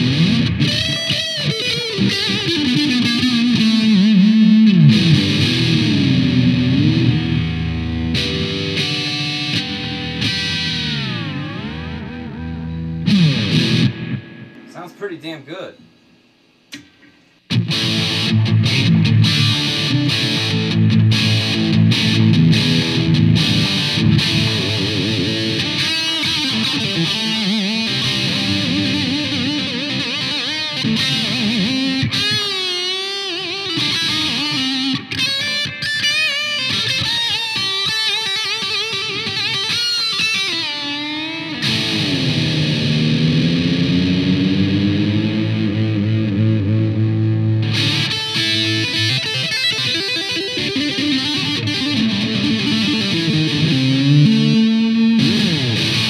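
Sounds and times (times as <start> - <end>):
distorted electric guitar with vibrato: 0.0 - 15.9, 16.7 - 56.0.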